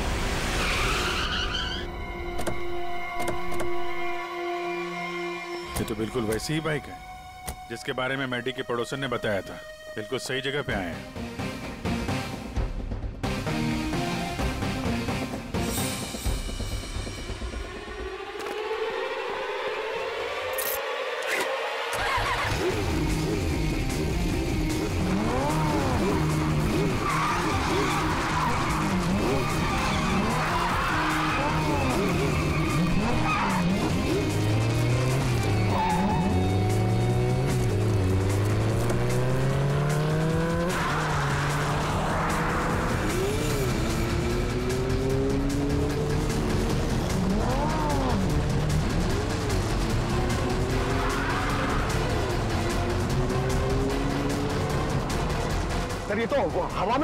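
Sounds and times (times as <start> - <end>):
background music: 0.0 - 57.0
motorcycle engine revving: 21.1 - 56.1.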